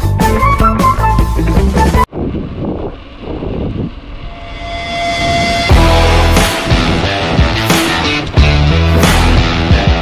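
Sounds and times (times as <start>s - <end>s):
wind buffeting microphone: 2.1s - 9.0s
bicycle tyre rumble on asphalt: 2.1s - 9.4s
held musical note: 3.9s - 8.8s.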